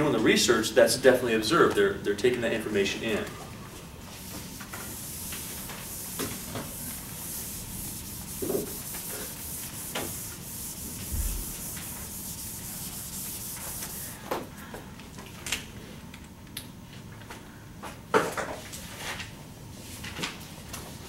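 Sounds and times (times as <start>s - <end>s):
eraser wiping whiteboard: 4.1s - 14.2s.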